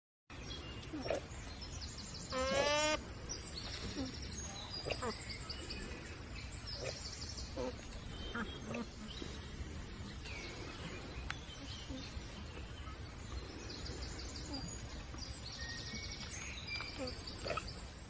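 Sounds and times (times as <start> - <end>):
small birds chirping: 0.3 - 18.0.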